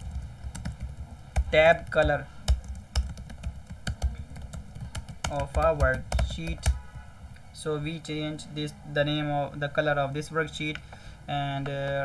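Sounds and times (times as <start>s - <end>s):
computer keyboard typing: 0.0s - 6.8s.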